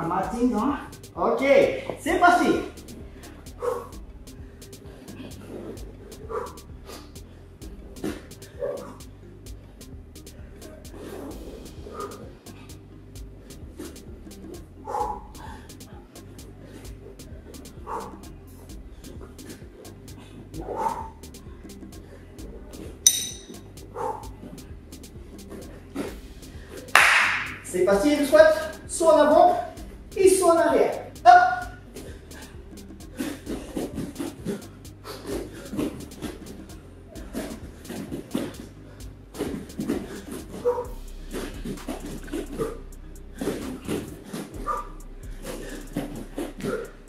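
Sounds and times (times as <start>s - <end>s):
steady low hum: 0.0s - 47.0s
loud breathy rush: 1.7s - 9.9s, 10.6s - 22.5s, 31.8s - 47.0s.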